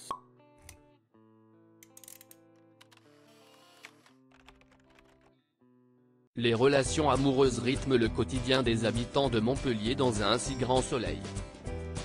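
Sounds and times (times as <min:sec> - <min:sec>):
light music: 0:06.4 - 0:12.0.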